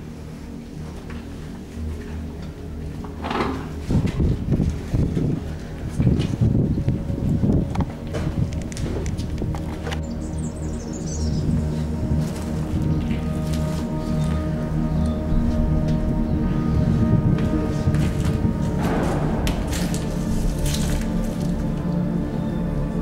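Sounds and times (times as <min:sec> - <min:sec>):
eerie sustained music tones: 0:00.0 - 0:23.0.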